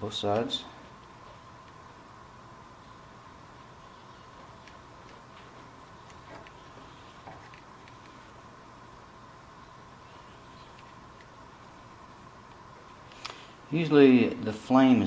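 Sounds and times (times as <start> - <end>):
lighter flame hissing: 13.0 - 13.6.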